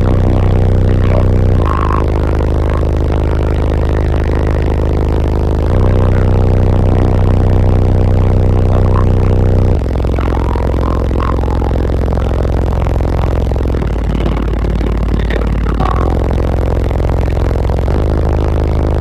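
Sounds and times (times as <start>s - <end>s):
deep bass notes from subwoofers: 0.0s - 19.0s.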